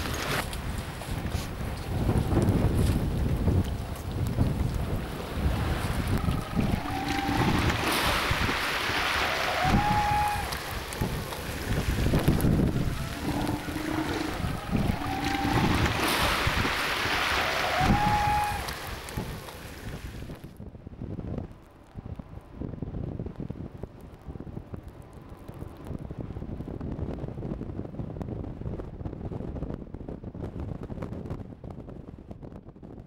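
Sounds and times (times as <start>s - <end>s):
wind gusting across microphone: 0.0s - 33.0s.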